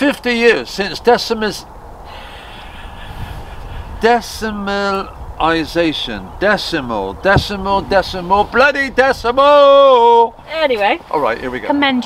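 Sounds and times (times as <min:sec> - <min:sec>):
low outdoor background rumble: 0:00.0 - 0:12.0.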